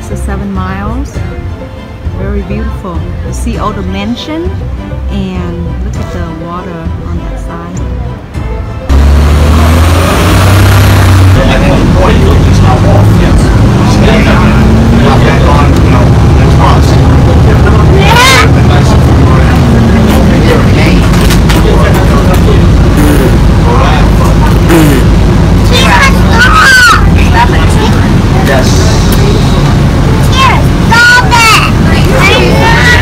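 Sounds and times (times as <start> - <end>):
bus engine and road rumble: 0.0 - 33.0
indistinct voices: 8.9 - 33.0.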